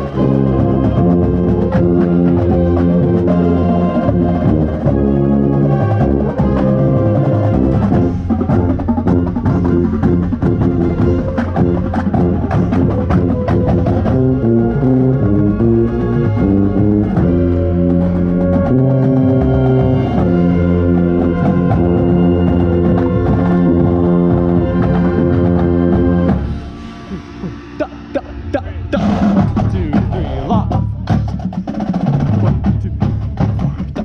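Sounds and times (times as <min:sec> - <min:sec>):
brass line playing loudly: 0:00.0 - 0:30.7
contrabass bugle low notes: 0:00.0 - 0:30.9
percussion: 0:00.0 - 0:34.0.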